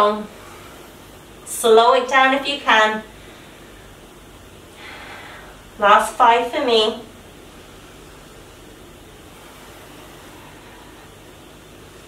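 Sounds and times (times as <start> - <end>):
room tone hiss: 0.0 - 12.0.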